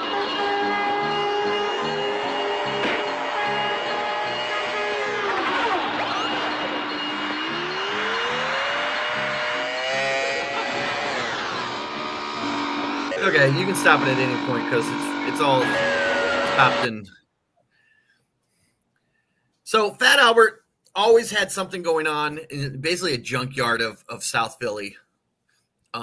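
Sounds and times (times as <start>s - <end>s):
motorbike engine revving effect: 0.0s - 17.0s.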